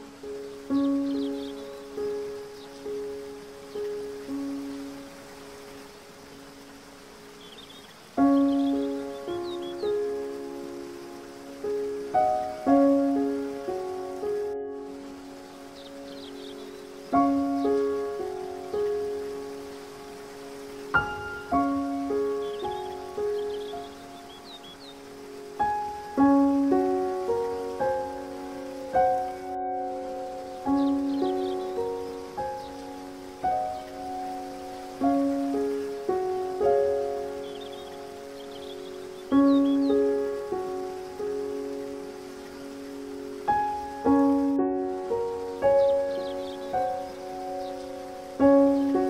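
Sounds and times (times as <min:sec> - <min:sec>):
faint bird chirps: 0:00.0 - 0:11.4, 0:14.9 - 0:26.2, 0:27.3 - 0:41.3, 0:42.0 - 0:49.0
rushing water hiss: 0:00.0 - 0:49.0
slow solo piano melody: 0:00.0 - 0:49.0.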